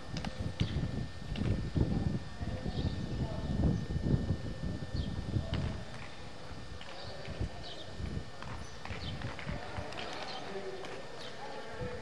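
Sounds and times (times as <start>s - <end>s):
faint distant voices: 0.0s - 12.0s.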